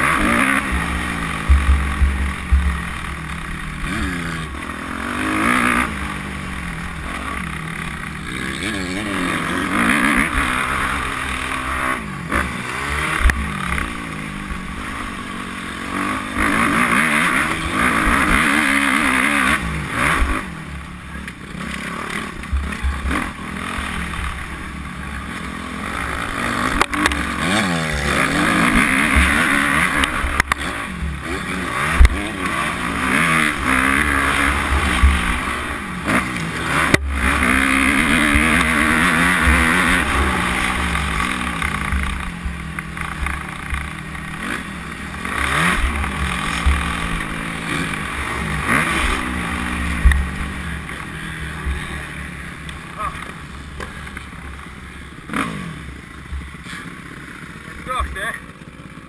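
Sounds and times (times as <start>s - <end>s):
motorbike engine revving: 0.0s - 59.0s.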